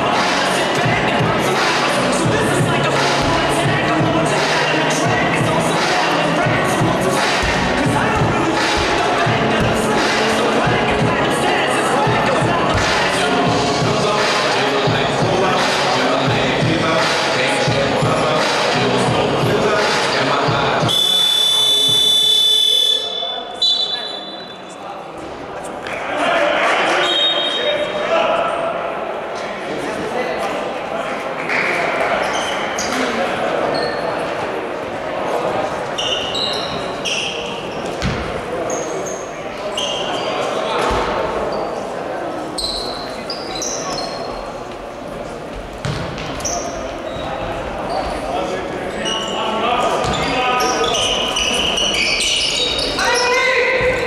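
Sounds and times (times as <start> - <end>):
voices echoing: 0.0 - 54.0
shoes squeaking on hardwood: 6.6 - 10.1
scoreboard buzzer tone: 20.9 - 23.1.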